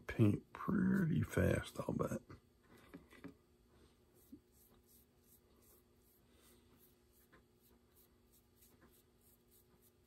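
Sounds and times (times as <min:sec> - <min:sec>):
low steady hum: 0:00.0 - 0:10.0
paintbrush strokes: 0:03.7 - 0:10.0.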